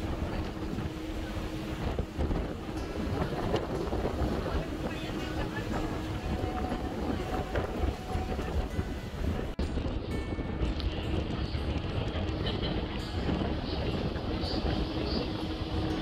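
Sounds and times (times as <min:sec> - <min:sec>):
water rushing: 0:00.0 - 0:09.9, 0:10.6 - 0:16.0
ferry engine: 0:00.0 - 0:16.0
wind buffeting microphone: 0:00.0 - 0:16.0.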